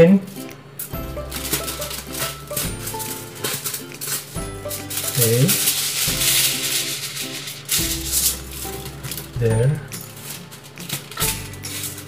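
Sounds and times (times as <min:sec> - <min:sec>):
background music: 0:00.0 - 0:12.0
aluminium foil crinkling: 0:01.2 - 0:12.0.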